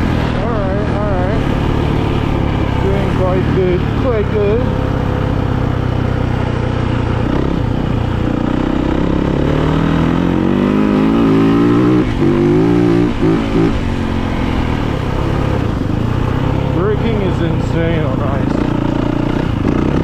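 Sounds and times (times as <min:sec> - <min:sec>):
motorcycle engine revving: 0:00.0 - 0:20.0.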